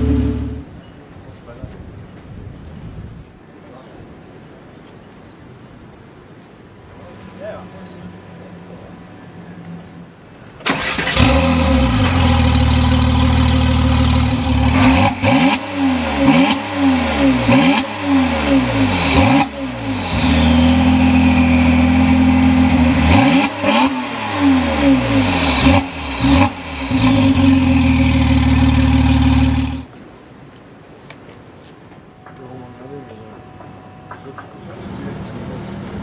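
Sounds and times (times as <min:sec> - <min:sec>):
car engine revving: 0:00.0 - 0:00.7, 0:10.7 - 0:29.9
car engine starting: 0:00.0 - 0:00.7, 0:10.6 - 0:29.9
car engine idling: 0:10.7 - 0:29.9.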